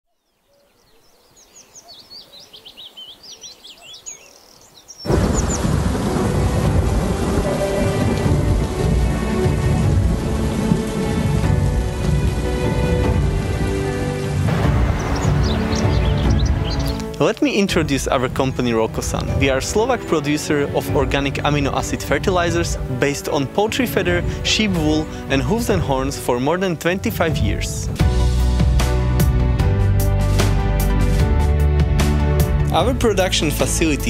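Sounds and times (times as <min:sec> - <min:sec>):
birds chirping: 0:00.0 - 0:06.2, 0:11.9 - 0:26.3
heavy rain: 0:05.0 - 0:31.2
thunder: 0:05.1 - 0:13.8, 0:14.4 - 0:16.8
sustained music score: 0:05.1 - 0:34.0.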